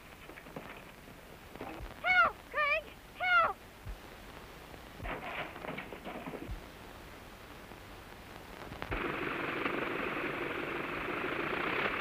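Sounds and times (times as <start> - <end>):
high-pitched voice calling out: 2.0 - 3.6.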